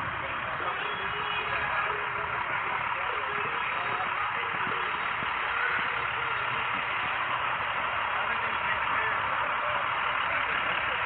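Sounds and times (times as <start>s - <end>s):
faint distant voices: 0.0s - 11.0s
street noise hiss: 0.0s - 11.0s.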